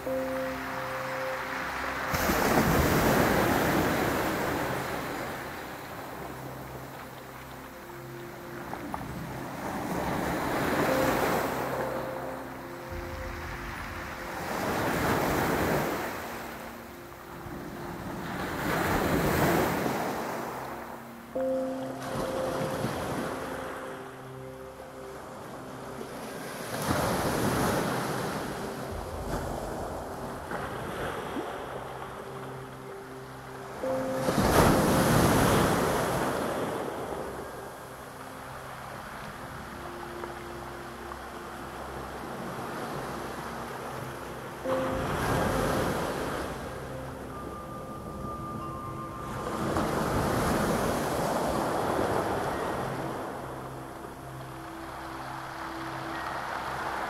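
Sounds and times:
waves breaking on pebble shore: 0:00.4 - 0:17.3, 0:26.2 - 0:31.8.

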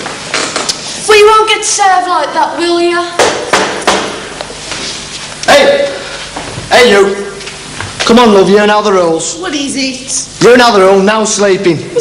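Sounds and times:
knocks on a hard surface: 0:03.2 - 0:04.2.

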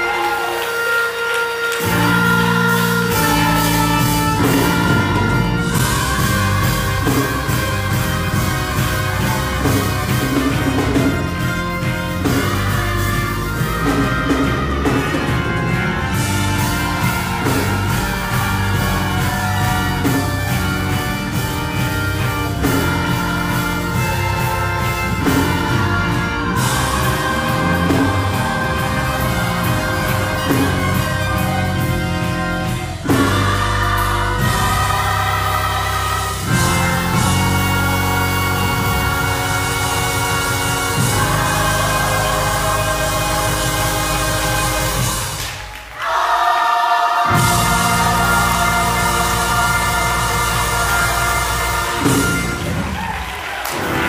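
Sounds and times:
sustained chords: 0:00.0 - 0:53.0
gospel choir singing: 0:00.0 - 0:54.0
bass playing: 0:01.8 - 0:46.4, 0:47.2 - 0:54.0.

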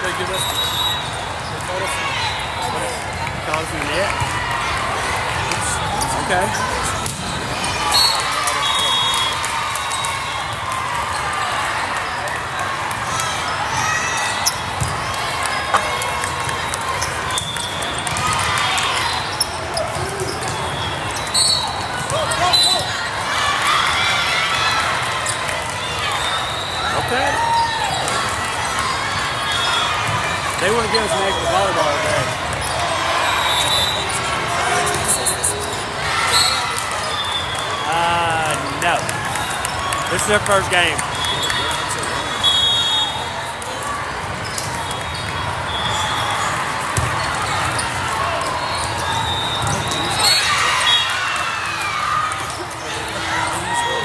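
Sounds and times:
spectators chattering and shouting: 0:00.0 - 0:54.0
sneakers squeaking on court: 0:13.5 - 0:22.9, 0:29.0 - 0:37.6, 0:44.2 - 0:50.9.

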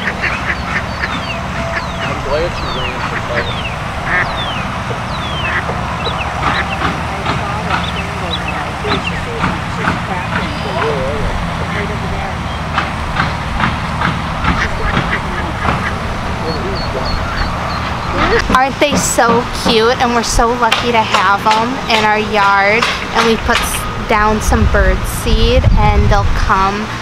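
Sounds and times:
ducklings peeping: 0:00.0 - 0:18.6
low rumble: 0:00.0 - 0:20.5.

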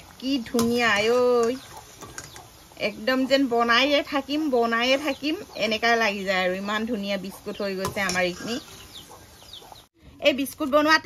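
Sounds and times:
hot oil sizzling in a wok: 0:00.0 - 0:09.0
woman's voice: 0:00.2 - 0:01.6, 0:02.8 - 0:08.7, 0:10.1 - 0:11.0
bird chirping: 0:01.4 - 0:10.0.

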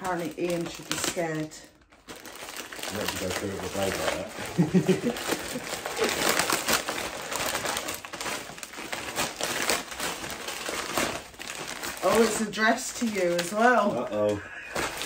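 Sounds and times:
plastic mailer bag crinkling and tearing: 0:00.0 - 0:15.0
paper envelope rustling: 0:01.9 - 0:15.0.

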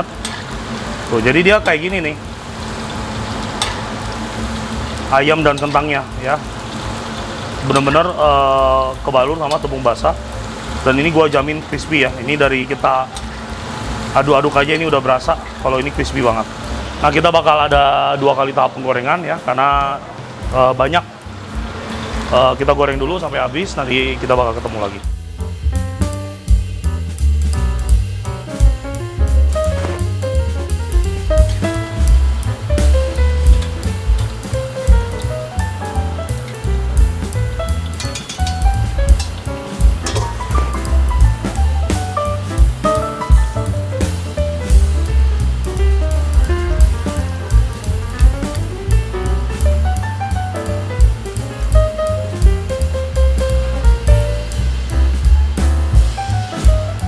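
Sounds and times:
jazzy music with drums and bass: 0:00.0 - 0:18.0, 0:19.8 - 0:57.0.

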